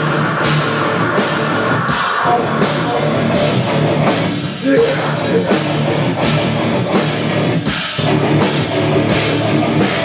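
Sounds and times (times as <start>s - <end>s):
distorted electric guitar: 0.0s - 10.0s
drum kit with cymbals: 0.0s - 10.0s.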